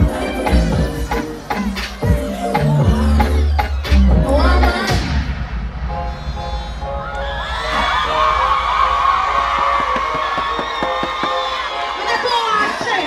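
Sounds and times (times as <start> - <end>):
crowd cheering and screaming: 0.0 - 5.0, 6.0 - 13.0
loud dancehall music: 0.0 - 13.0.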